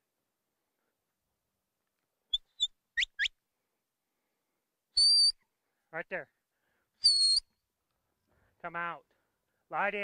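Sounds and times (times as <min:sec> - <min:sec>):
handler's whistle commands: 0:05.0 - 0:05.4, 0:07.0 - 0:07.5.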